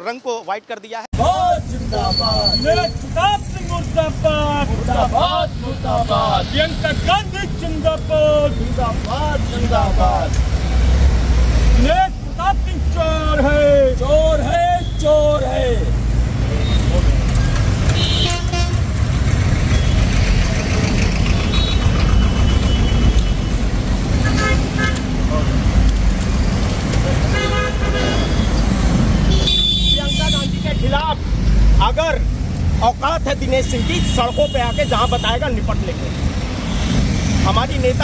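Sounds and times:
people's voices: 0.0s - 10.8s
road traffic: 0.0s - 38.0s
vehicle horn toots: 17.9s - 18.9s, 21.4s - 23.5s, 24.2s - 25.0s, 27.3s - 28.6s, 29.3s - 31.0s, 33.8s - 35.4s.

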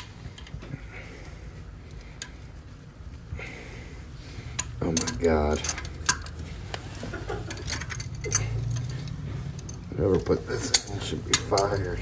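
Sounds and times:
pliers clicking against bolt: 4.5s - 6.4s, 7.6s - 12.0s.

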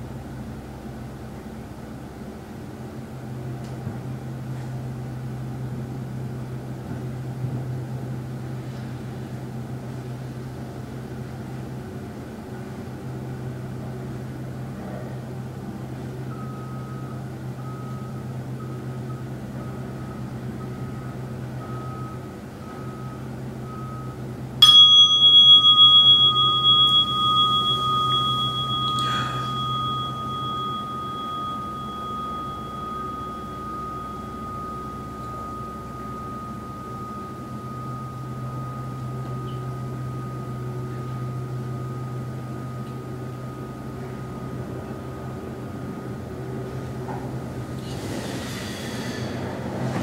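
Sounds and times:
low room hum: 0.0s - 50.0s
faint pulsing tone: 23.9s - 45.4s
meditation bell ringing: 24.6s - 45.4s.

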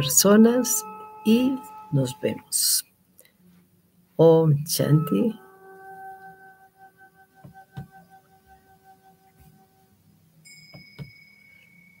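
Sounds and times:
high ringing chime tone: 0.0s - 2.8s, 4.8s - 12.0s
low ringing chime tone: 0.0s - 2.8s, 4.8s - 12.0s.

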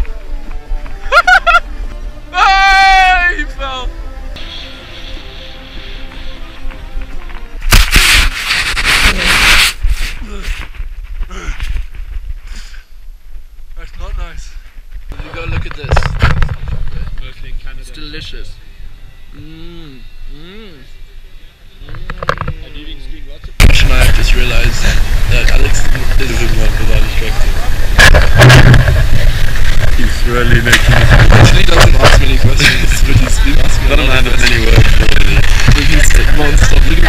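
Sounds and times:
background music: 0.1s - 7.7s
snowboard scraping through powder snow: 7.7s - 10.3s
faint wavering tone: 18.2s - 23.0s
wind buffeting microphone: 23.5s - 37.0s.

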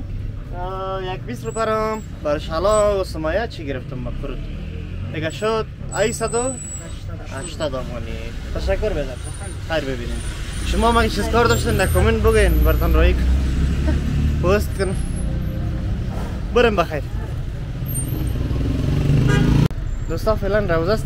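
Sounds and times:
man talking: 7.2s - 13.4s, 14.4s - 15.1s, 16.5s - 17.4s, 20.1s - 21.0s.

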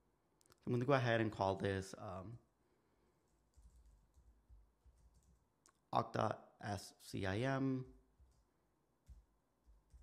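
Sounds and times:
faint keyboard keystrokes: 8.2s - 10.0s.

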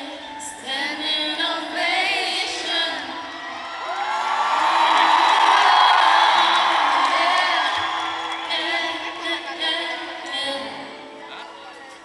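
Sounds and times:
arena crowd cheering and screaming: 1.7s - 12.0s.

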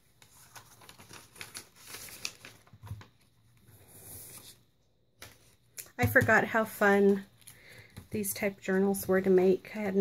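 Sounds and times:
paper rustling: 0.0s - 4.6s.

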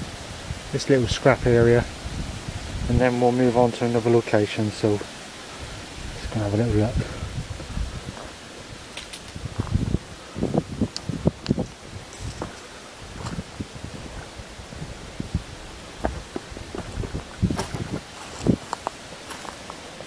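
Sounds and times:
footsteps through dry leaves and twigs: 7.5s - 10.0s, 11.5s - 14.4s, 15.9s - 20.0s.

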